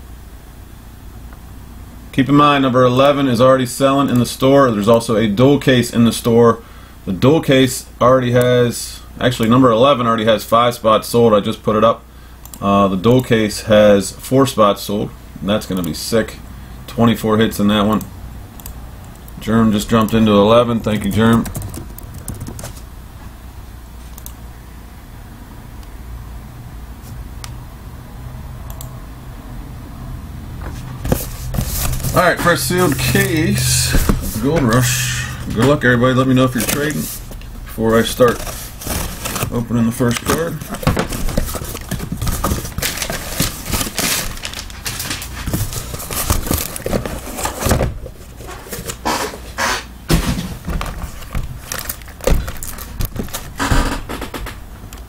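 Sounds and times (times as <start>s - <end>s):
steady low hum: 0.0s - 55.0s
cardboard case scraping and rustling: 30.7s - 34.8s, 38.0s - 39.6s, 40.2s - 49.5s
tape ripping: 38.2s - 47.6s
boxes set down with knocks: 50.1s - 51.5s.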